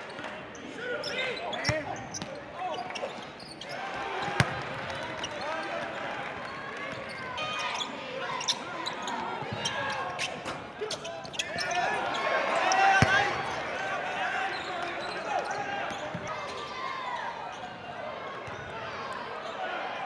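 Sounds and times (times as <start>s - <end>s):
crowd chatter and shouting: 0.0s - 20.0s
crowd cheering: 3.6s - 10.2s, 11.5s - 20.0s
sneakers squeaking on hardwood: 7.0s - 11.9s.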